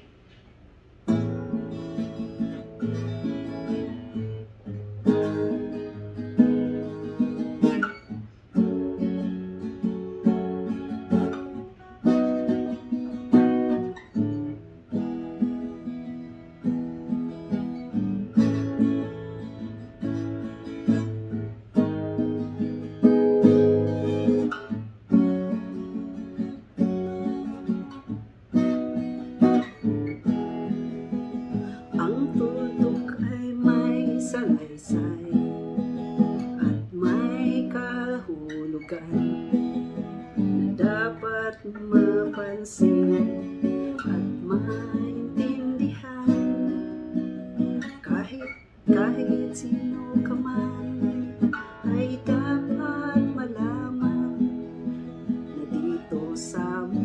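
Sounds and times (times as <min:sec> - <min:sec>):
acoustic guitar strumming: 0:01.0 - 0:57.0.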